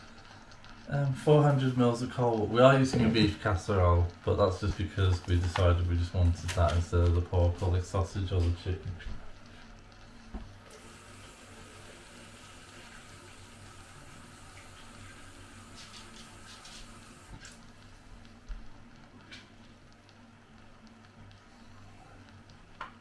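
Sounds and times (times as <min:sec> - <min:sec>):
tap water running into container: 0:00.5 - 0:08.6, 0:10.7 - 0:17.6.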